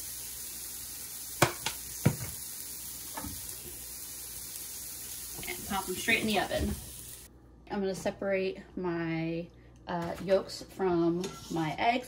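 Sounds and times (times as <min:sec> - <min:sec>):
asparagus sizzling in a skillet: 0:00.0 - 0:07.3.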